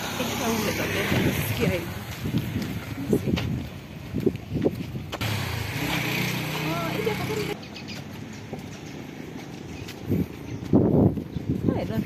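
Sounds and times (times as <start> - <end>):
vehicle engine running: 5.2 - 7.6.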